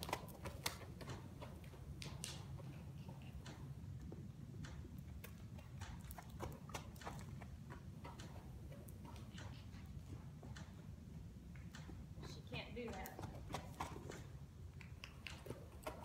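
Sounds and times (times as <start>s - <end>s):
hooves trotting on soft dirt: 0.0s - 16.0s.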